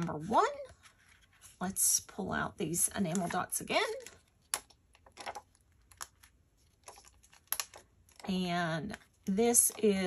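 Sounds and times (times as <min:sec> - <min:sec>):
plastic sheet clicking and crinkling: 0:03.0 - 0:08.3.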